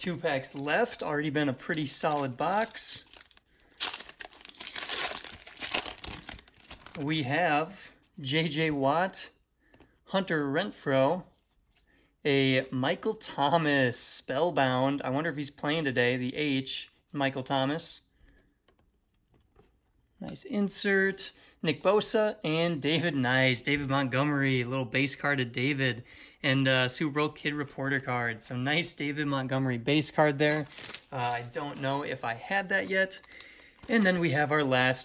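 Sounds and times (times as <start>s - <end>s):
foil wrapper tearing and crinkling: 0.4s - 7.0s, 30.5s - 31.8s, 32.8s - 35.0s
trading cards being shuffled: 32.7s - 35.0s.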